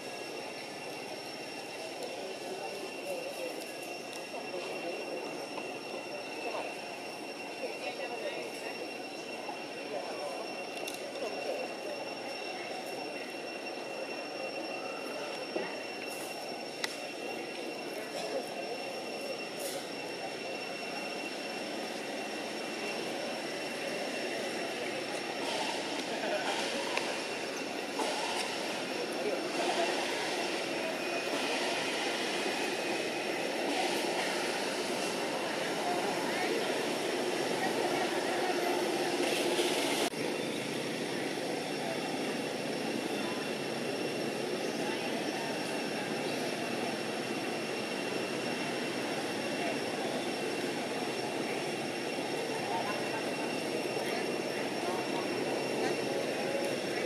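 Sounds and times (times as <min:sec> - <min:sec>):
faint voices: 0:00.0 - 0:57.0
high-pitched whine: 0:00.0 - 0:57.0.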